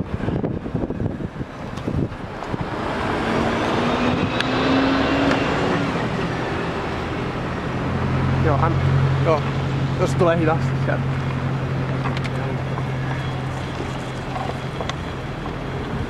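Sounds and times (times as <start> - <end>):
wind buffeting microphone: 0.0 - 16.0
car passing on snowy road: 1.9 - 16.0.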